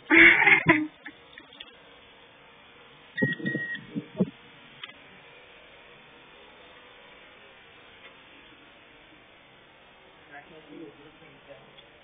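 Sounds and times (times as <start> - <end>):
electronic beep: 3.2 - 4.3.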